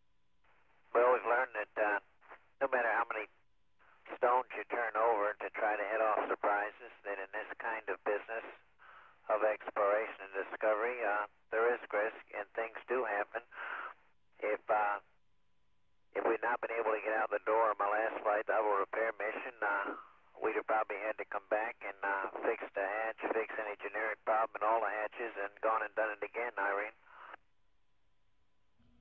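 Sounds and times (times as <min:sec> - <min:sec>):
man speaking over radio: 0:00.9 - 0:02.0, 0:02.6 - 0:03.3, 0:04.0 - 0:15.1, 0:16.2 - 0:27.4.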